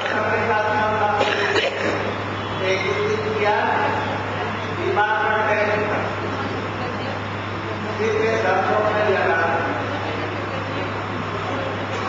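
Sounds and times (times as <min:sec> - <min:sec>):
low electrical hum: 0:00.0 - 0:12.0
noisy background: 0:00.0 - 0:12.0.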